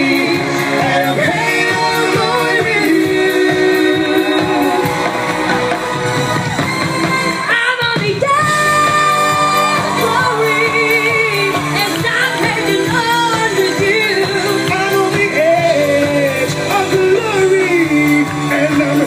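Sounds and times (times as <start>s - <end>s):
live pop band: 0.0s - 19.0s.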